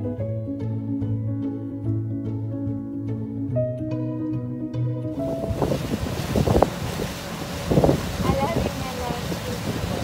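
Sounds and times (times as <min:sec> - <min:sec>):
plucked-string music: 0:00.0 - 0:07.6
water rushing: 0:05.1 - 0:10.0
wind buffeting microphone: 0:05.1 - 0:10.0.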